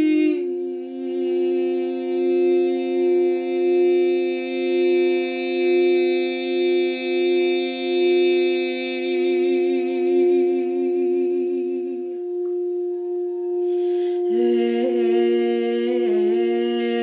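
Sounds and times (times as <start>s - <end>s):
singing bowl ringing: 0.0s - 17.0s
woman breathing in: 13.5s - 14.3s.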